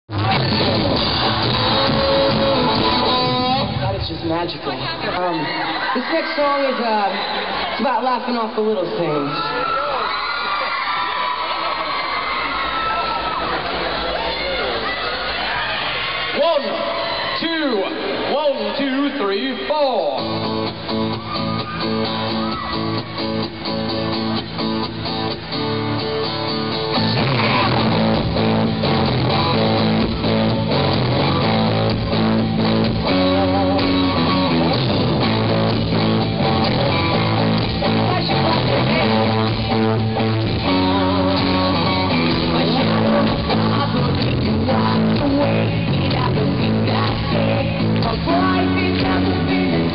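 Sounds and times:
audience cheering and screaming: 0:00.1 - 0:04.0, 0:04.6 - 0:19.0, 0:19.9 - 0:45.2
acoustic guitar strumming: 0:00.1 - 0:04.9, 0:20.2 - 0:49.9
male lead vocal: 0:33.0 - 0:35.2, 0:36.5 - 0:49.9.

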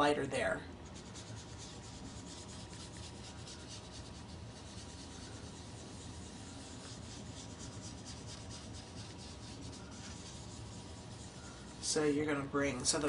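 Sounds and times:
sponge dabbing ink on cardstock: 0:00.8 - 0:12.2.

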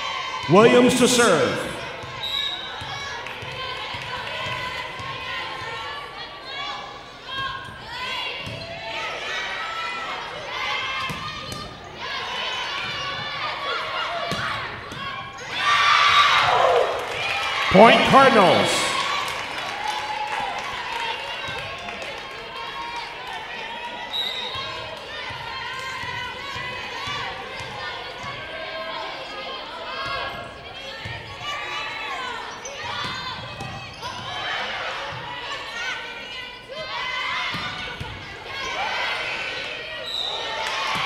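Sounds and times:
players calling out: 0:00.4 - 0:01.9, 0:17.7 - 0:19.2
spectators talking: 0:00.5 - 0:02.0, 0:17.7 - 0:19.2.

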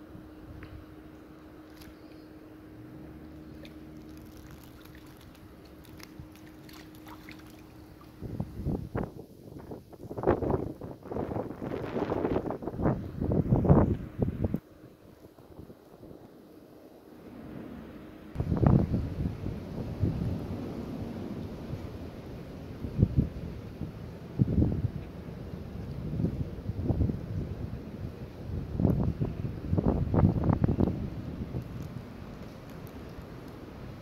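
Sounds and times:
gusty wind on microphone: 0:08.0 - 0:16.2, 0:17.3 - 0:34.0.

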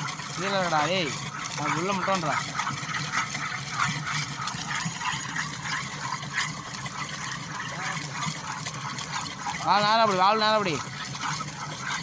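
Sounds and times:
water splashing into plastic tank: 0:00.0 - 0:12.0
water spurting from pipe: 0:00.0 - 0:12.0.

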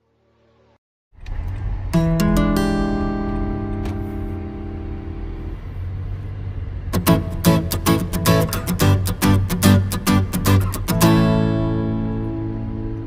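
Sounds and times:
low steady rumble: 0:01.2 - 0:08.9
guitar strumming: 0:01.5 - 0:05.8, 0:06.8 - 0:13.0
acoustic guitar picking: 0:01.7 - 0:05.8, 0:06.9 - 0:13.0.

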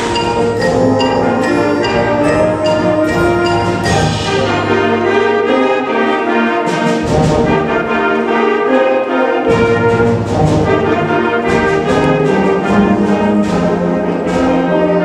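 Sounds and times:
concert band playing held chords: 0:00.0 - 0:06.8.

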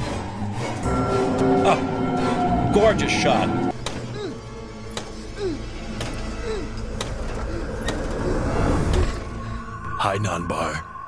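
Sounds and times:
eerie sustained music: 0:00.0 - 0:11.0.

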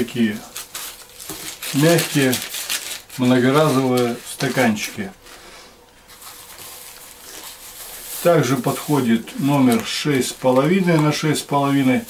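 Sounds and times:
plastic cups and bag rustling: 0:00.0 - 0:05.4, 0:06.0 - 0:12.0.

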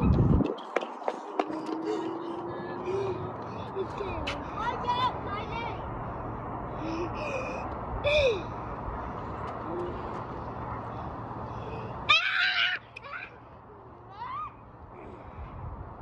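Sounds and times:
outdoor background noise: 0:00.0 - 0:16.0
children squealing and calling: 0:12.1 - 0:14.6
child whooping: 0:14.1 - 0:14.6.

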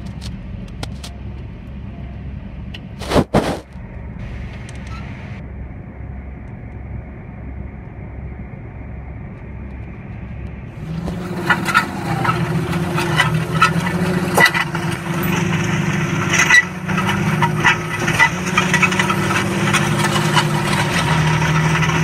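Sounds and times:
tractor engine under load: 0:10.7 - 0:22.0
disc harrow clanking and rattling: 0:10.8 - 0:22.0.

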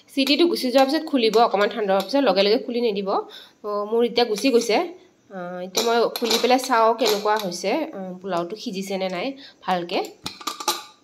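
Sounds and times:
person speaking: 0:00.1 - 0:10.2.

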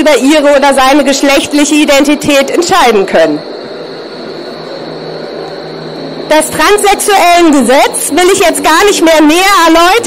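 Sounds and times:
faint high whine: 0:00.0 - 0:10.0
street hum and hiss: 0:00.0 - 0:10.0.

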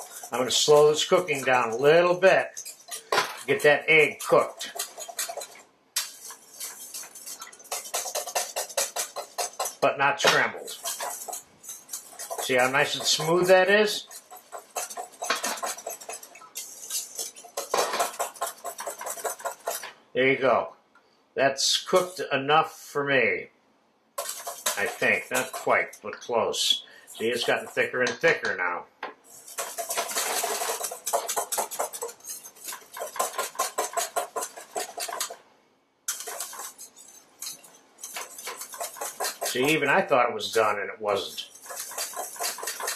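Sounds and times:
whisk beating in metal bowl: 0:00.0 - 0:20.0, 0:24.2 - 0:28.5, 0:29.2 - 0:35.4, 0:36.1 - 0:42.9.

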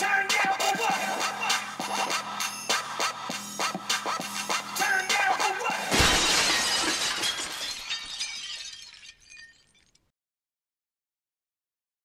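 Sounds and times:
music: 0:00.0 - 0:06.0
glass shattering: 0:05.9 - 0:10.1.

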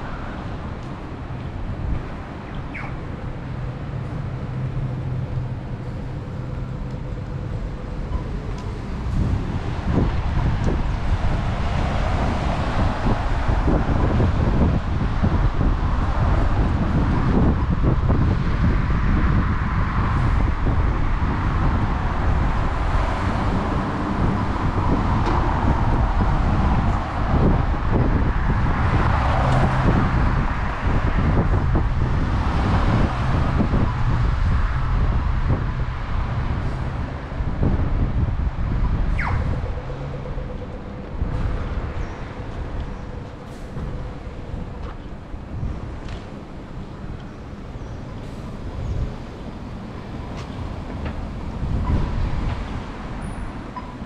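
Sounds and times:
rumble of passing vehicles: 0:00.0 - 0:54.0.

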